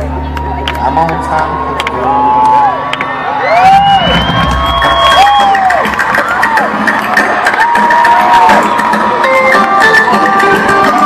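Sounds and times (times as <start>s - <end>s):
crowd cheering: 0.0s - 11.0s
music from stage: 0.0s - 11.0s
people whooping: 0.2s - 11.0s.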